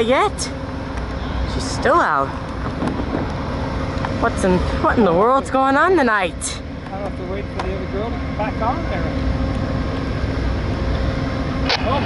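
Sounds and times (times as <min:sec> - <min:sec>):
diesel locomotive idling: 0:00.0 - 0:12.0.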